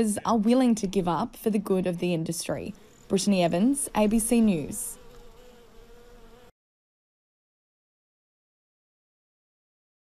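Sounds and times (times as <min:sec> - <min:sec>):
honeybees buzzing: 0:00.0 - 0:06.6.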